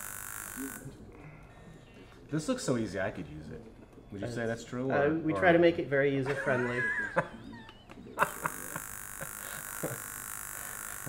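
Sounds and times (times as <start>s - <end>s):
gas hissing: 8.2s - 11.0s.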